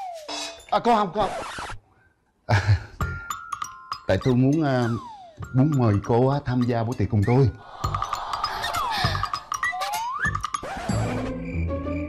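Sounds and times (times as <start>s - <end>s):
sliding cartoon whistle: 0.0s - 0.4s, 8.5s - 12.0s.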